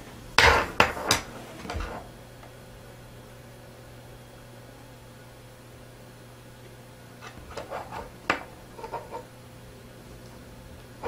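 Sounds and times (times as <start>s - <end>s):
hard objects knocking and clattering: 7.3s - 9.2s.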